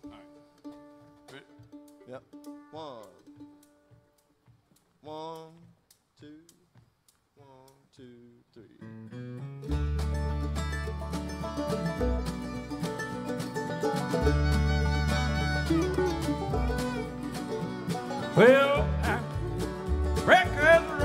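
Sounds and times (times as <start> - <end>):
upright bass walking: 0.0 - 8.3, 9.1 - 21.0
acoustic guitar: 8.8 - 21.0
light drums: 9.7 - 21.0.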